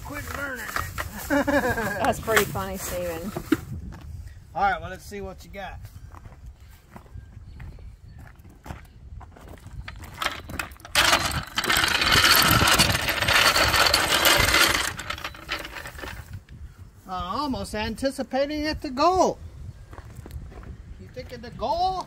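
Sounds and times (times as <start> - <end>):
loud rattling crunch: 0.0 - 3.1, 9.4 - 16.5
metal jack dragged across gravel: 0.0 - 3.6, 9.7 - 16.5
footsteps on gravel: 6.1 - 11.1.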